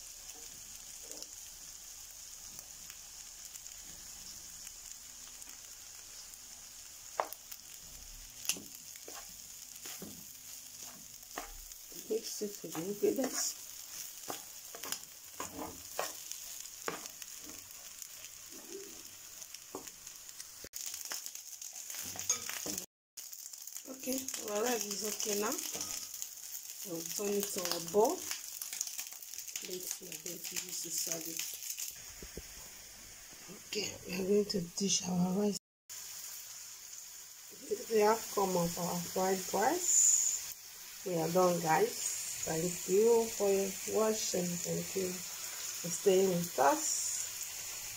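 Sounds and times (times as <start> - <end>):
rice sizzling in a frying pan: 0.0 - 47.9
wooden spatula scraping a pan: 9.0 - 18.7
background hiss: 16.7 - 20.7, 35.9 - 47.9.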